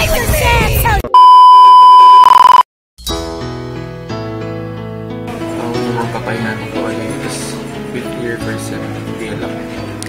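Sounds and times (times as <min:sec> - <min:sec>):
test tone beep: 0:01.1 - 0:02.6.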